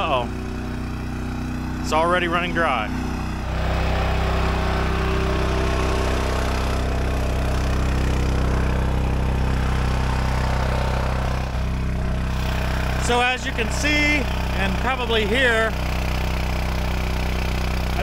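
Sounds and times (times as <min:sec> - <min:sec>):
pump sucking air and water: 0:00.0 - 0:18.0.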